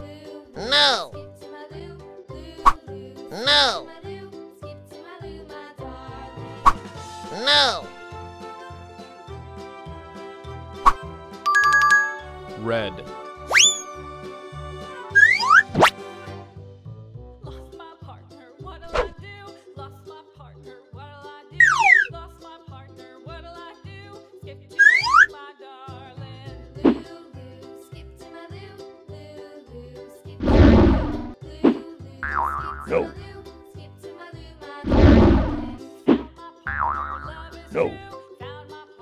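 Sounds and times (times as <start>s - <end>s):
children's music with steady beat: 0.0s - 39.0s
cartoon swooping effect: 0.6s - 1.1s, 2.6s - 3.8s, 6.6s - 7.9s, 10.8s - 11.0s, 13.5s - 14.0s, 15.1s - 16.0s, 21.6s - 22.1s, 24.8s - 25.3s, 30.4s - 33.2s, 34.9s - 38.0s
cartoon upward glide: 0.6s - 1.1s, 2.6s - 3.8s, 7.4s - 7.9s, 13.5s - 14.0s, 15.1s - 15.9s, 21.6s - 22.1s, 24.8s - 25.3s, 32.2s - 33.2s
cartoon rising chirps: 13.5s - 14.0s, 15.1s - 15.9s, 21.6s - 22.1s, 24.8s - 25.3s, 32.3s - 33.1s
warbling tone with rising glide: 34.9s - 35.8s.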